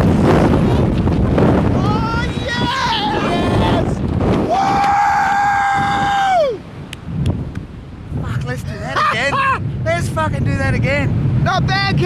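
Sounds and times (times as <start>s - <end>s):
wind noise on microphone: 0.0s - 12.0s
man yelling with excitement: 1.8s - 6.6s, 8.8s - 9.6s.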